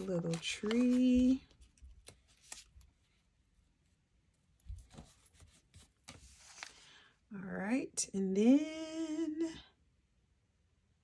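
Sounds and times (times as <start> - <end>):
faint paper rustles: 0.0 - 7.1.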